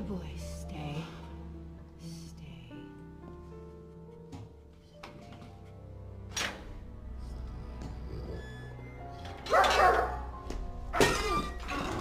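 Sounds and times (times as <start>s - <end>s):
background music: 0.0s - 12.0s
large dog barking: 9.5s - 10.3s.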